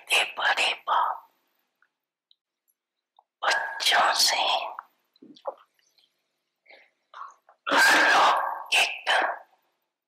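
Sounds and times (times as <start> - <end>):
faint mouth sounds: 4.6 - 7.7.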